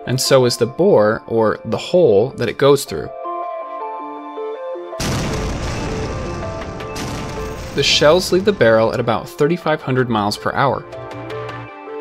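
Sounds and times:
soft background music: 0.0s - 12.0s
cannon boom with rumble: 5.0s - 8.8s.

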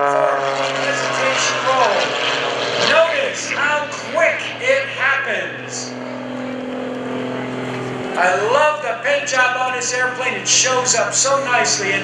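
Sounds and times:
airplane engine and propeller drone: 0.0s - 12.0s.

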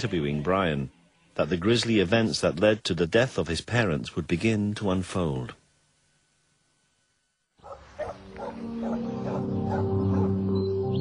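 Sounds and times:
dog barking: 7.6s - 10.4s
low sustained music tones: 7.8s - 11.0s.

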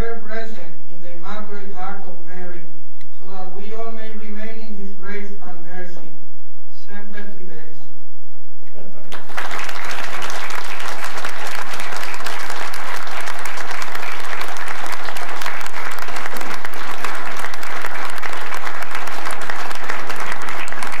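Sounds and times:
audience applause: 9.1s - 21.0s.

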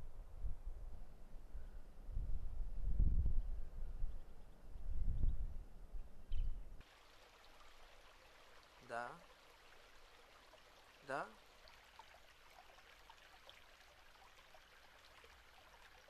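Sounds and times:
running water: 6.8s - 16.0s.

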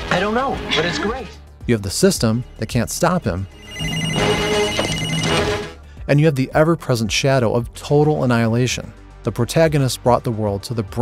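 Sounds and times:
alarm ringing: 3.5s - 5.8s.

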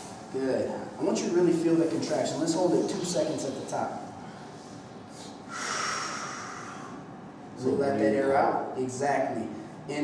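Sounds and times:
man breathing hard: 4.2s - 7.2s
man exhaling forcefully: 5.5s - 7.0s.

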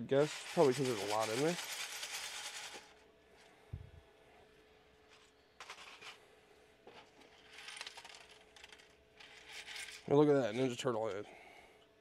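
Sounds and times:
small plastic pieces rattling: 0.2s - 2.9s, 7.4s - 10.1s.

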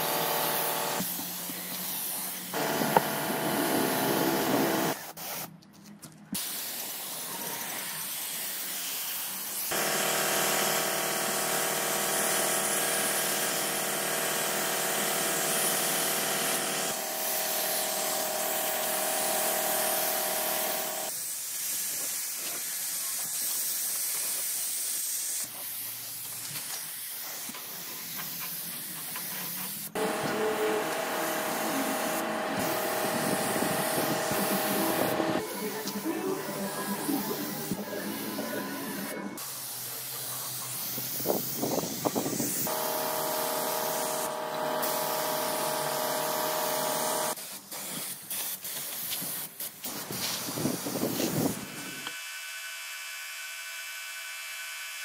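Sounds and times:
paint spray gun hissing: 0.0s - 5.5s, 6.4s - 52.1s
steady hum: 30.0s - 39.4s.

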